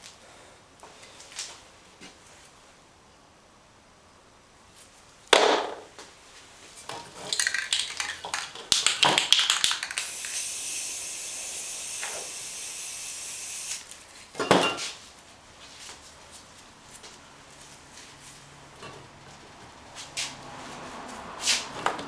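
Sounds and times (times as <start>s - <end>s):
spray can rattling: 7.1s - 10.9s
spray can hissing: 7.3s - 13.9s.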